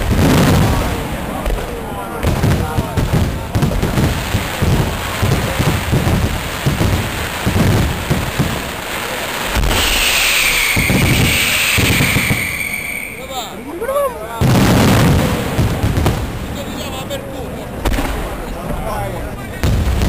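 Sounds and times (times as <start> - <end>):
firework shells bursting: 0.0 - 13.8
firework whistles: 7.5 - 14.1.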